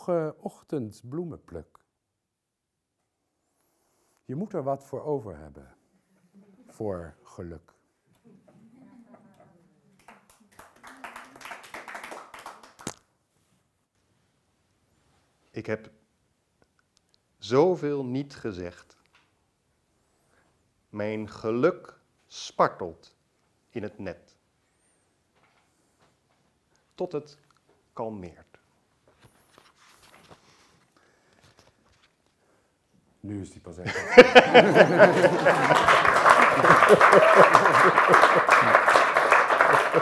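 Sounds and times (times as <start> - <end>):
audience clapping: 10.0 - 13.0, 34.0 - 40.0.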